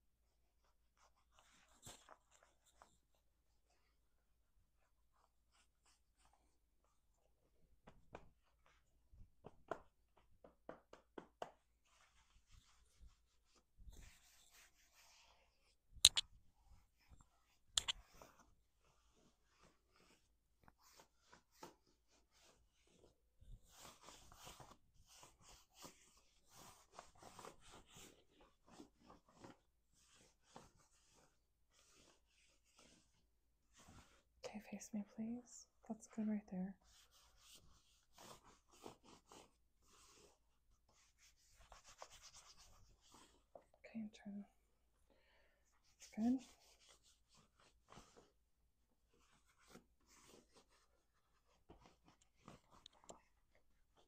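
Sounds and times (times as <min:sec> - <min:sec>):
hands patting and rubbing jeans: 0:07.8 - 0:14.9, 0:17.1 - 0:18.4.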